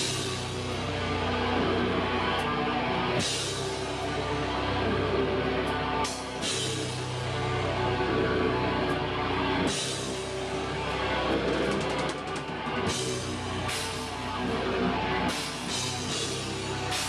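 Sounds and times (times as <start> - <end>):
pounding drum kit: 0.0 - 9.0, 9.6 - 17.0
distorted guitars and bass: 0.0 - 17.0.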